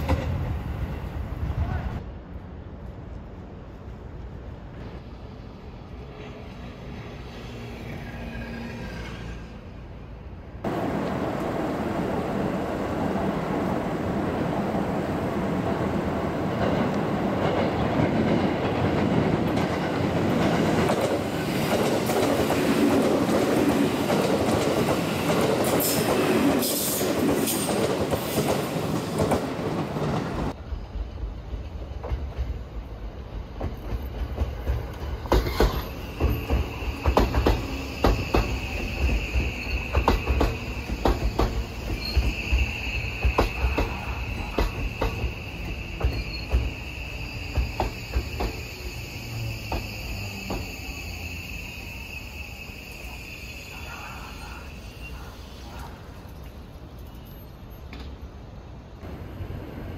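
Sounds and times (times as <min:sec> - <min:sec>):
train wheels rushing on rail: 0:00.0 - 0:58.2
rhythmic train wheel clacks: 0:33.6 - 0:46.8
high-pitched wheel squeals: 0:35.5 - 0:55.3.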